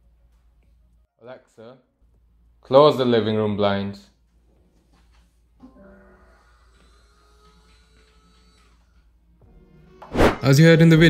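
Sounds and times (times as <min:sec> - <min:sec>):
faint electric motor whine: 0:05.8 - 0:09.7.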